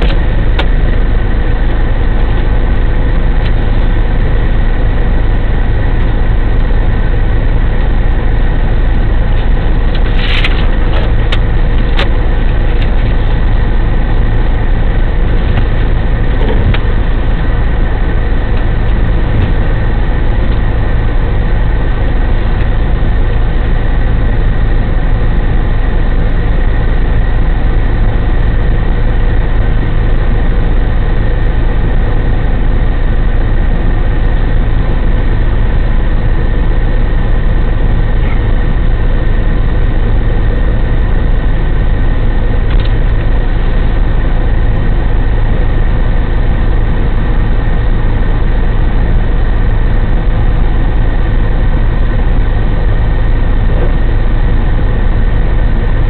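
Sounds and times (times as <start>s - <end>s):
diesel engine running: 0.0s - 56.0s.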